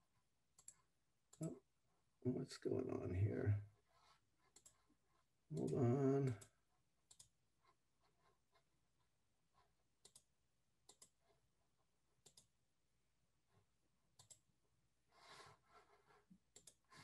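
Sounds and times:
computer mouse clicks: 0.6s - 1.5s, 4.5s - 4.8s, 5.5s - 7.4s, 10.0s - 11.3s, 12.2s - 12.5s, 14.1s - 14.4s, 16.5s - 17.0s.

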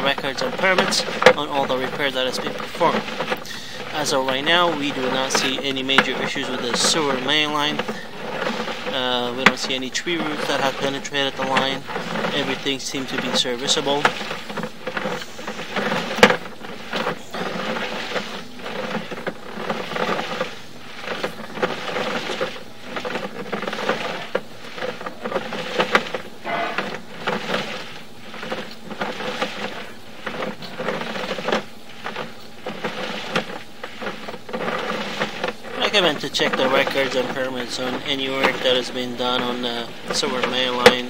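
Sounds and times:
cable rattling and scraping: 0.0s - 41.0s
steady hum: 0.0s - 41.0s.

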